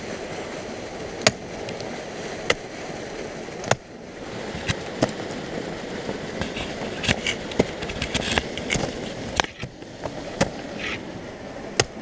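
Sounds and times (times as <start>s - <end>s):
steady rustling noise: 0.0s - 11.2s.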